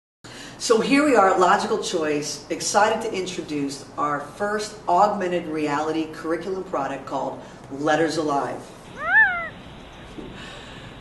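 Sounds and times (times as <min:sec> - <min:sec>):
cat meowing: 0:08.9 - 0:09.6.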